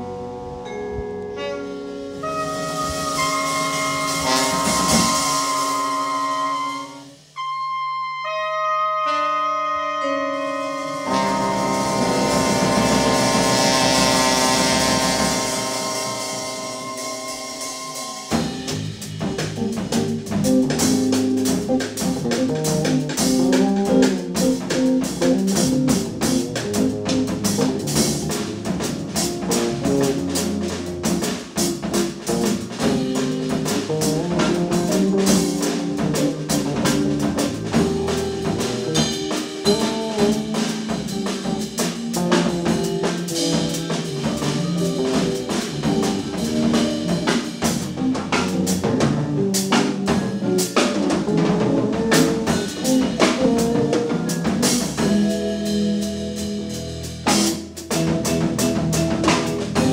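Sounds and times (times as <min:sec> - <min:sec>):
drums and bass busy rhythm: 0:00.0 - 0:08.3, 0:10.0 - 0:59.9
jazz band playing: 0:00.0 - 0:59.9.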